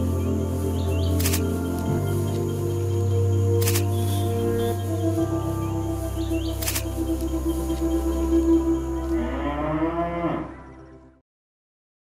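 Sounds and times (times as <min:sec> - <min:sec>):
background music: 0:00.0 - 0:11.2
cow mooing: 0:09.1 - 0:10.6.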